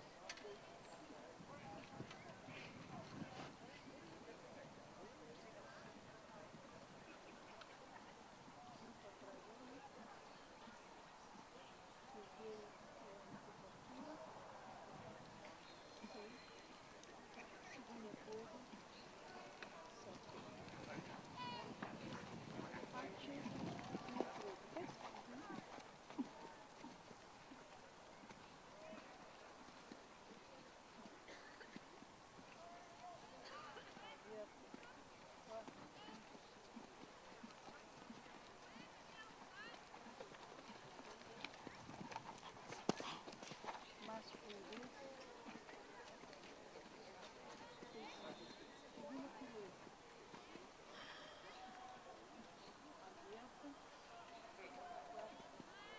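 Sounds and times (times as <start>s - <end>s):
horse hoofbeats on dirt: 16.6s - 50.6s.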